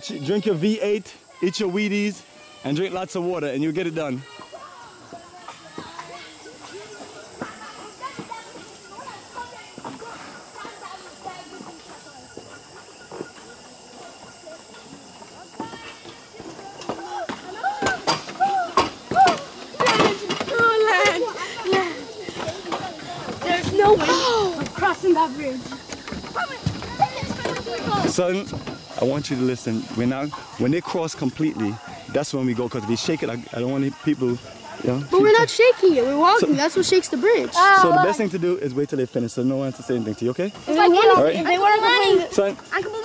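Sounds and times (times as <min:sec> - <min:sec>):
steady high hiss: 0:00.0 - 0:43.0
people talking: 0:02.7 - 0:43.0.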